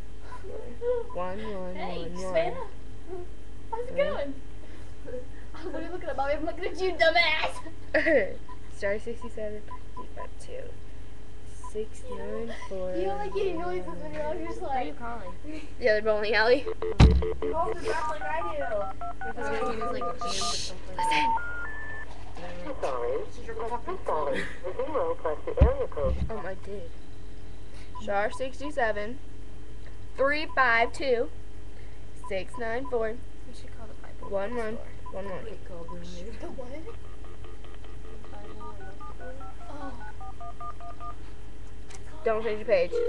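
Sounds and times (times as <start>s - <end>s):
phone keypad beeps: 16.7s - 22.0s, 36.9s - 41.2s
rising three-tone telephone signal: 16.7s - 22.1s, 37.0s - 41.2s.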